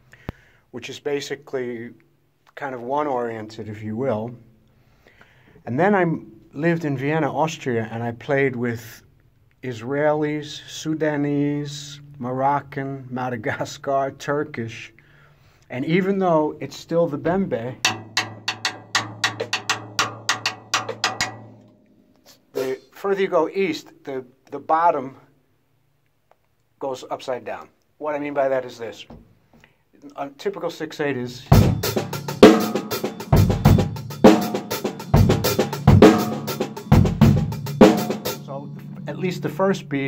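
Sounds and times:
low drum ringing: 17.3 - 22.4, 31.5 - 40.0
drumsticks striking drum kit: 17.9 - 22.4.

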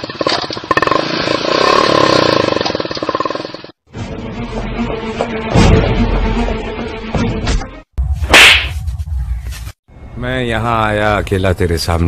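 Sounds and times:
whip-crack swish: 8.2 - 9.0.

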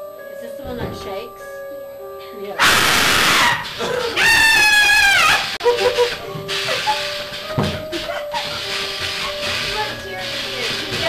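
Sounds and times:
high-pitched scream: 2.6 - 5.9
hissing air blast: 2.6 - 11.0.

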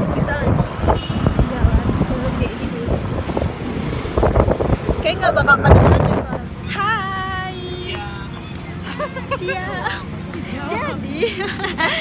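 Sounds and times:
wind buffeting microphone: 0.0 - 6.5
road and traffic noise: 0.0 - 12.0.

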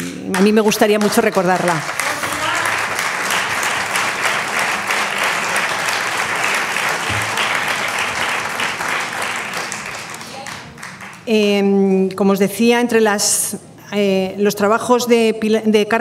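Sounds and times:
audience applauding: 0.1 - 11.3.

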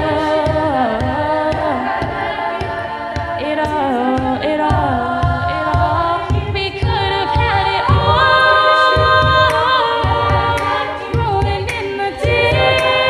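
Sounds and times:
vocal percussion beat: 0.0 - 13.0
women's a cappella ensemble singing: 0.0 - 13.0.

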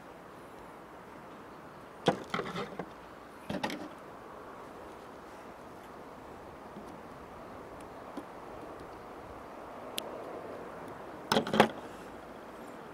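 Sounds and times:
faint steady hiss: 0.0 - 12.9.

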